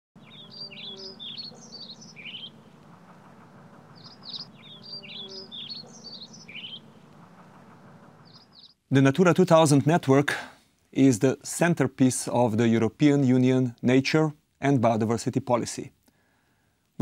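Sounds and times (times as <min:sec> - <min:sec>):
songbird chirping: 0:00.2 - 0:10.0
faint low hum: 0:00.2 - 0:10.1.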